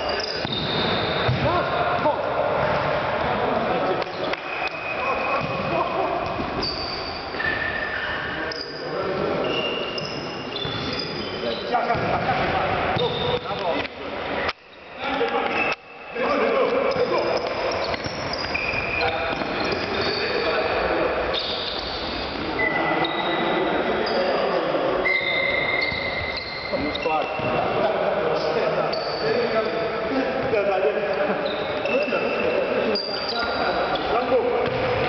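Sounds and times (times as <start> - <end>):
trainers squeaking on court floor: 0.0 - 13.8, 14.4 - 35.0
ball kicked and bouncing: 1.3 - 1.5, 5.4 - 6.6, 11.9 - 12.4, 34.6 - 35.0.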